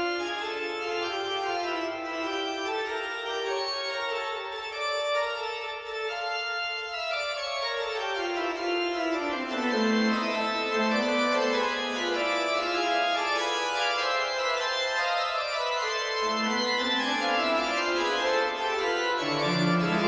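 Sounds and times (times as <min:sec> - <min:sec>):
pipe organ chords: 0:00.0 - 0:20.0.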